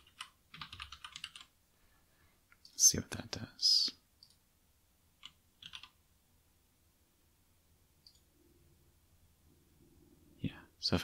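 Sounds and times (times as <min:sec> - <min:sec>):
faint low room hum: 0:00.0 - 0:11.0.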